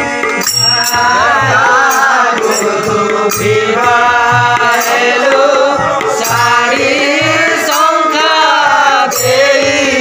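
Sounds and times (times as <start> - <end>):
harmonium chords: 0.0 - 10.0
small hand cymbals: 0.2 - 3.7
chanted vocal line: 0.4 - 10.0.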